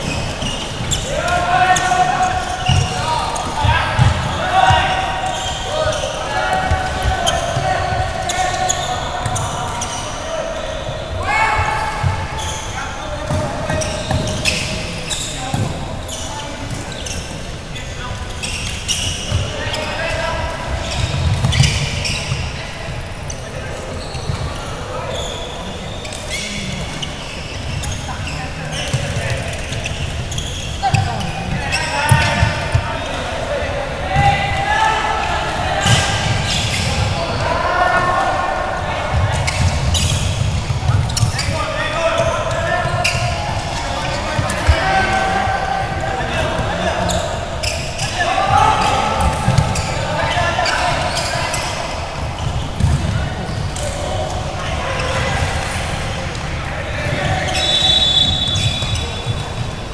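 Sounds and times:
players shouting: 0:00.0 - 0:59.9.

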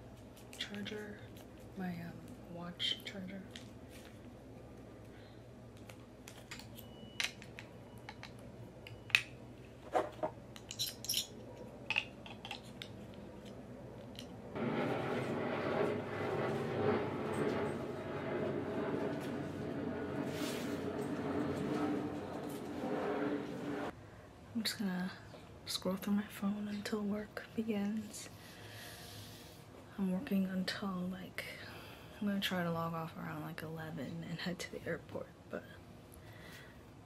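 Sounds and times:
steady loud noise: 0:14.4 - 0:23.9.

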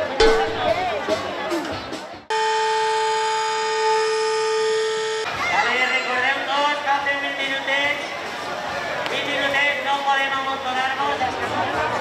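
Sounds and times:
crowd chatter: 0:00.0 - 0:02.3, 0:05.2 - 0:12.0
air horn blast: 0:02.3 - 0:05.3.

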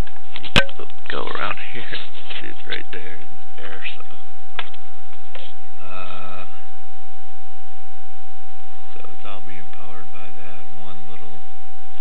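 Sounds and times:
man's voice: 0:00.8 - 0:04.2, 0:05.8 - 0:06.6, 0:08.9 - 0:11.4.

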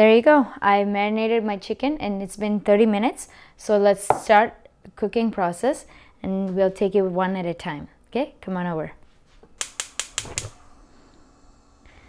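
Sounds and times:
gas igniter clicking: 0:09.6 - 0:10.6.

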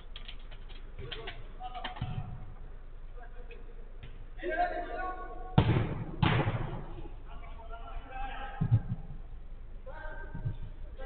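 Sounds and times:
football being kicked: 0:05.6 - 0:06.8.

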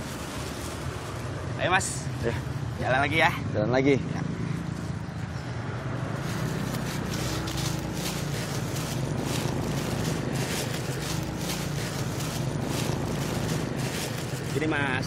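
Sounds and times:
road and wind noise: 0:00.0 - 0:15.0
scooter engine running: 0:06.2 - 0:15.0.

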